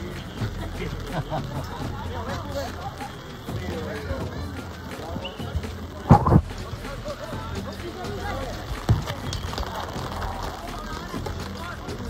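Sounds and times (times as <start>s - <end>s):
rain hissing: 0.0s - 12.0s
single thud: 6.1s - 6.5s.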